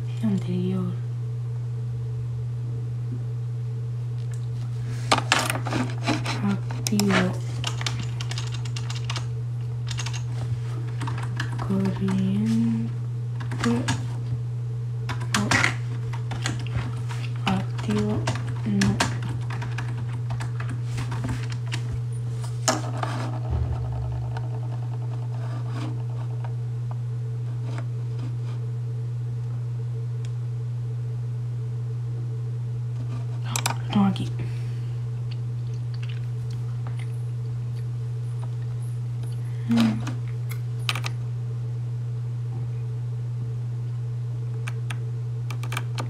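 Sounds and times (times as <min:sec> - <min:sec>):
low electrical hum: 0:00.0 - 0:46.0.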